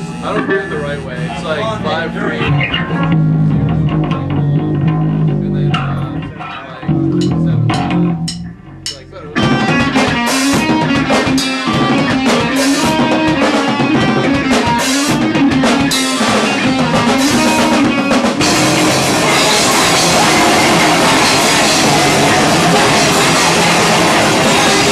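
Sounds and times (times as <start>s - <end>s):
drum kit: 0.0s - 24.9s
loud electric guitars: 0.0s - 24.9s
low guitar riff: 0.0s - 24.9s.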